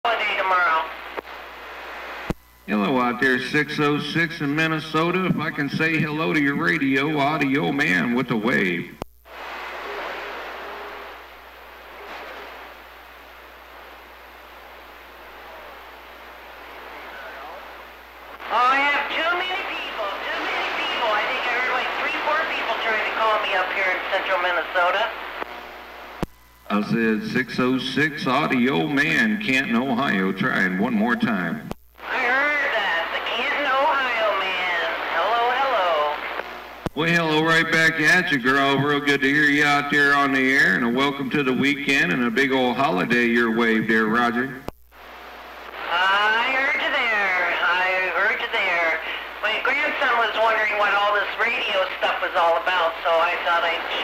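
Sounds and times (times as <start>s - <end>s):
woman's voice over radio: 0.0s - 1.1s, 18.4s - 25.3s, 32.0s - 36.4s, 45.7s - 54.0s
radio static hiss: 0.0s - 54.0s.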